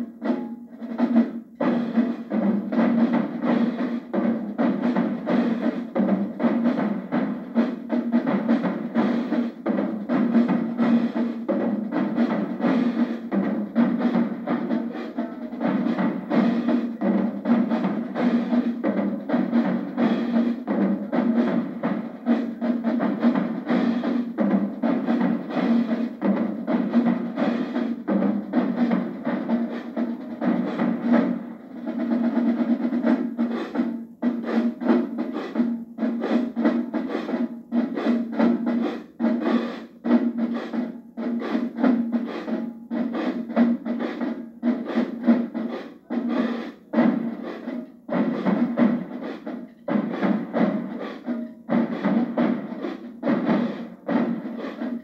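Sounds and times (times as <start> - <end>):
marching bass drums: 0.0 - 55.0
snare drums: 0.0 - 55.0.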